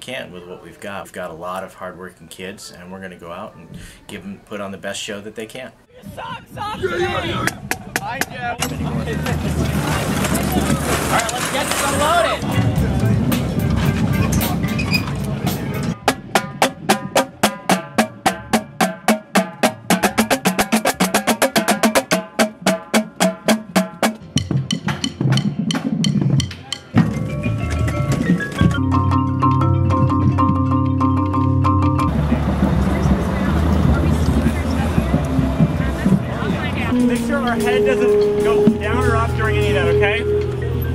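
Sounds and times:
scattered percussion hits: 0:15.5 - 0:40.9
held pitched chords: 0:27.0 - 0:40.9.

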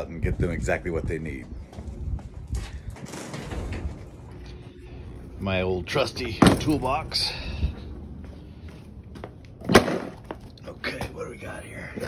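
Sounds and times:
footsteps on hard ground: 0:01.2 - 0:03.1, 0:07.7 - 0:11.2.

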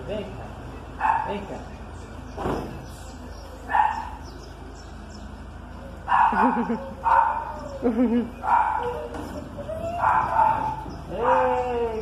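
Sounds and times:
dog barking: 0:01.0 - 0:01.4, 0:03.7 - 0:04.2, 0:06.1 - 0:07.7, 0:08.4 - 0:09.2, 0:09.9 - 0:11.6.

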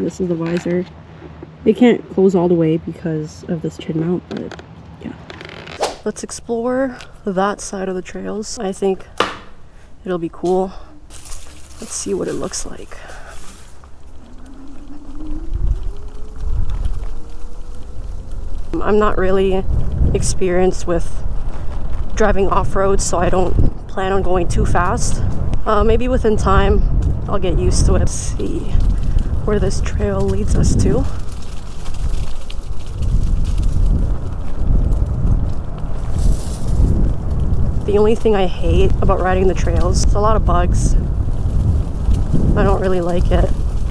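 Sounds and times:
wind buffeting microphone: 0:01.3 - 0:43.9
low rumble: 0:03.4 - 0:43.9
small knocks: 0:09.2 - 0:09.6
electric scooter motor whining: 0:13.8 - 0:19.0.

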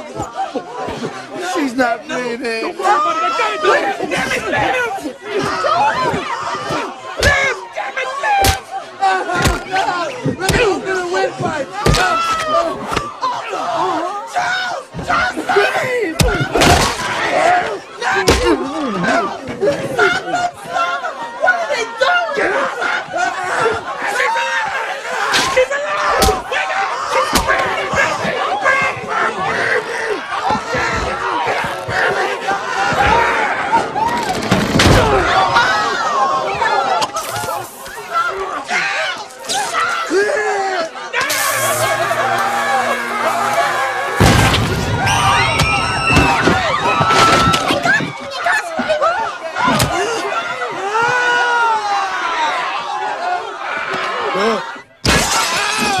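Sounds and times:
people shouting over one another: 0:02.7 - 0:56.0.

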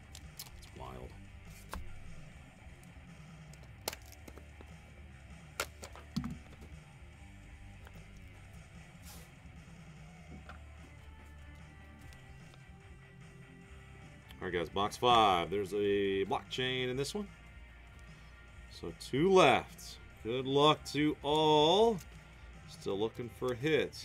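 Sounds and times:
quiet background music: 0:00.0 - 0:24.0
cardboard box clicks and taps: 0:05.6 - 0:06.8.

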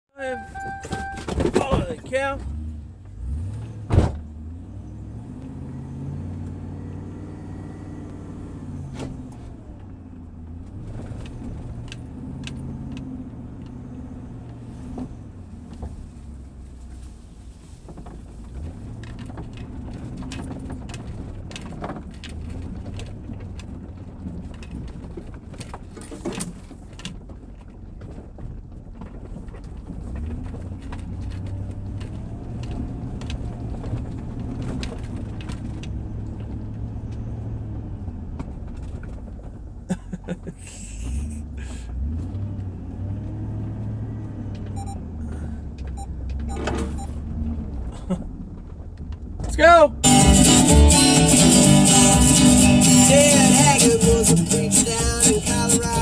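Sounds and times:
car engine humming while driving: 0:00.2 - 0:56.0
light clicks and rattles: 0:17.8 - 0:37.3.

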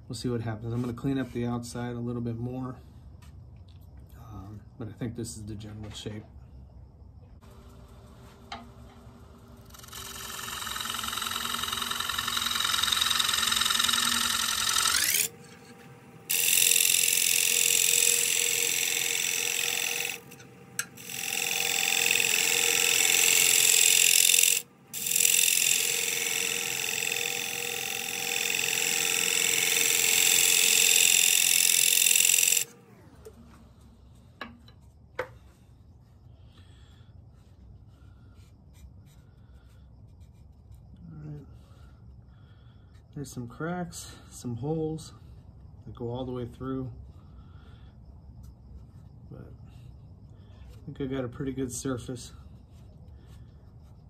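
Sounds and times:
gouge cutting wood on lathe: 0:09.6 - 0:33.0.

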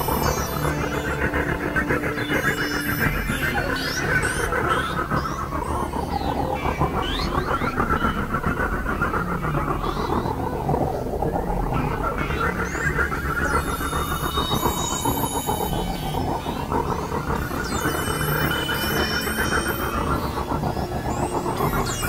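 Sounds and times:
high squealing synth glides: 0:00.0 - 0:08.8, 0:09.4 - 0:22.0
synthesizer drone: 0:00.0 - 0:22.0.

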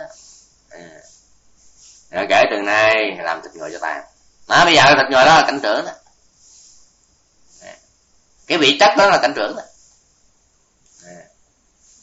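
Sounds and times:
man breathing faintly: 0:00.0 - 0:02.2, 0:06.3 - 0:08.5, 0:11.8 - 0:12.0.

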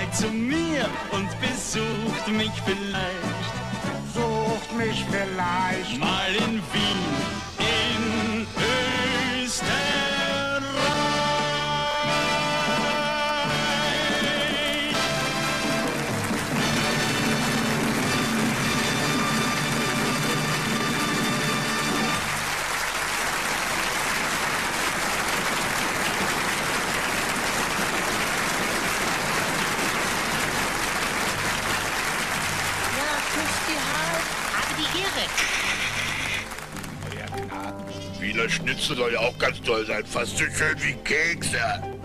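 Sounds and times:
audience applause: 0:11.4 - 0:37.7.

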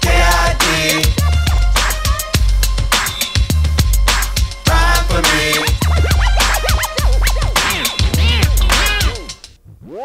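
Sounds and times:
hip hop beat with deep bass: 0:00.0 - 0:10.0
turntable scratching: 0:05.2 - 0:10.0.

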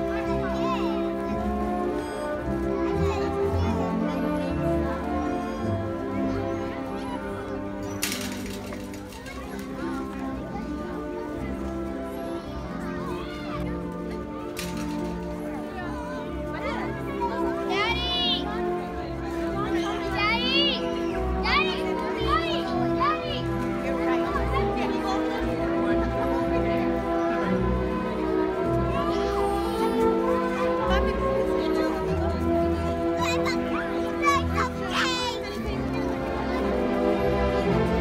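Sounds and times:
background music: 0:00.0 - 0:38.0
children's voices and chatter: 0:00.0 - 0:38.0.

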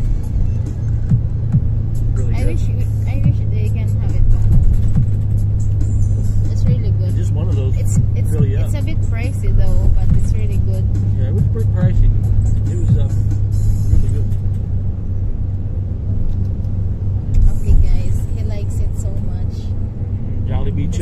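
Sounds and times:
bus engine drone: 0:00.0 - 0:21.0
music playing: 0:00.0 - 0:21.0
road noise: 0:00.0 - 0:21.0
voices: 0:02.1 - 0:05.2, 0:06.2 - 0:13.3, 0:17.4 - 0:21.0.

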